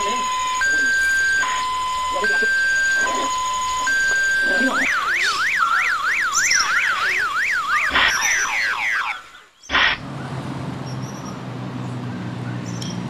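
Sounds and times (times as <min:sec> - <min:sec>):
electronic alarm sweeping: 0:00.0 - 0:10.0.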